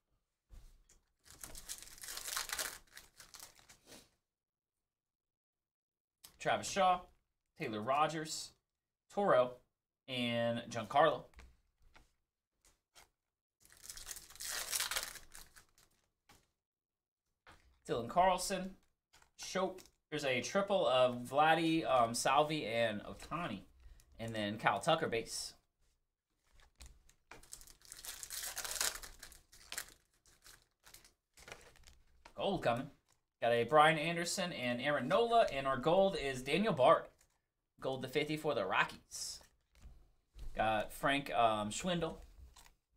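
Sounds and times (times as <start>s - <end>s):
foil wrapper tearing and crinkling: 1.2s - 3.8s, 13.6s - 16.1s, 26.6s - 32.1s.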